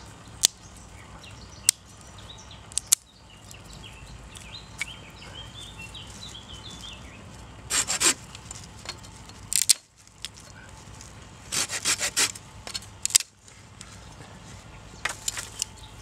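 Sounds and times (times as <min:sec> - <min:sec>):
saw rasping through sticks: 0:07.7 - 0:08.2, 0:11.5 - 0:12.4.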